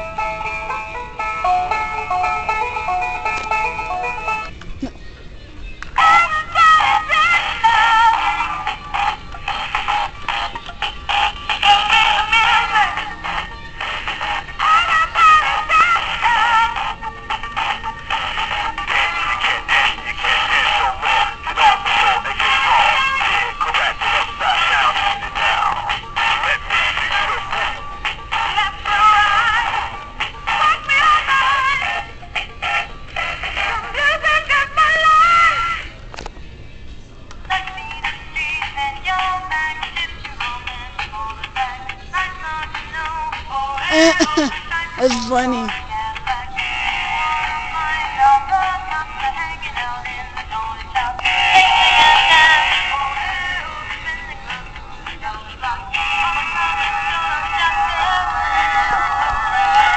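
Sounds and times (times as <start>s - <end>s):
electronic singing through tinny speaker: 50.6s - 54.3s.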